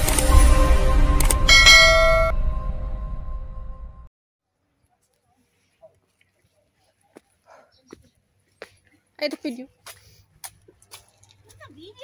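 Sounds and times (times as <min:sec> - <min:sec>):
low rumbling intro music: 0:00.0 - 0:04.1
bright bell-like ding: 0:01.5 - 0:02.4.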